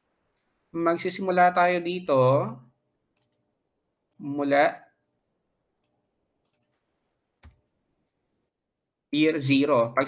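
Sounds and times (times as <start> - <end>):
person speaking: 0.7 - 2.8, 4.2 - 5.0, 9.1 - 10.0
computer mouse clicks: 3.2 - 3.5, 5.8 - 7.7.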